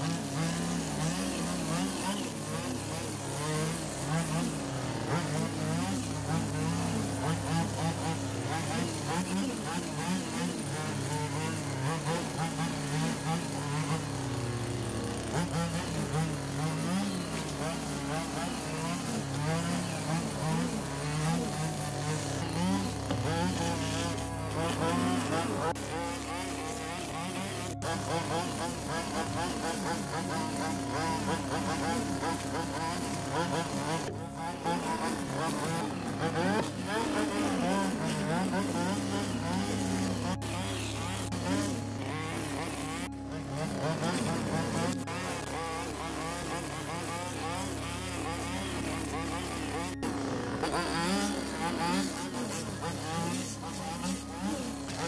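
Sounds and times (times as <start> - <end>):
string trimmer cutting grass: 0.0 - 55.0.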